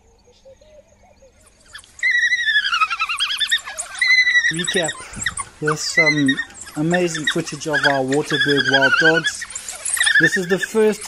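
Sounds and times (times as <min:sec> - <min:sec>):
wild dogs twittering: 0:00.4 - 0:11.0.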